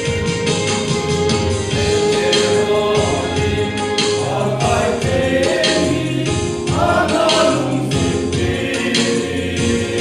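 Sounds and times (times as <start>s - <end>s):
instrumental backing: 0.0s - 10.0s
men singing gospel song: 1.8s - 10.0s.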